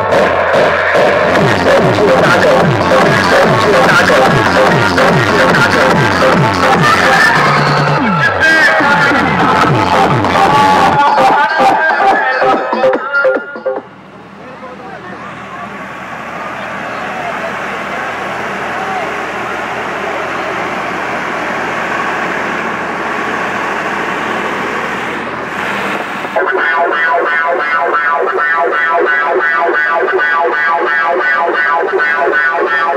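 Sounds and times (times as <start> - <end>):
crowd voices outdoors: 0.0 - 32.9
pulsing siren-like electronic music: 0.0 - 32.9.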